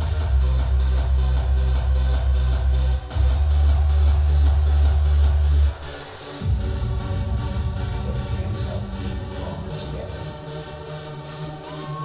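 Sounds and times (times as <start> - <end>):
loud hardstyle dance music: 0.0 - 12.0.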